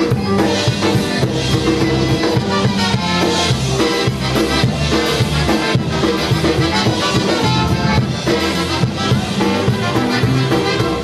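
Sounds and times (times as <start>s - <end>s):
accordion: 0.0s - 11.0s
bass guitar: 0.0s - 11.0s
brass: 0.0s - 11.0s
drum kit: 0.0s - 11.0s.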